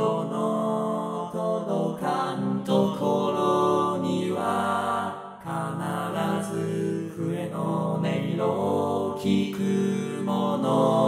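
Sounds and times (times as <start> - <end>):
synthesized male chorus singing: 0.0 - 11.0.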